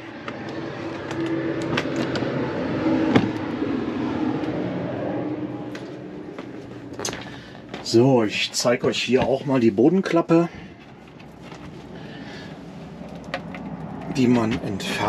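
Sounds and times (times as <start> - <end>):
engine running at low speed: 0.0 - 15.0.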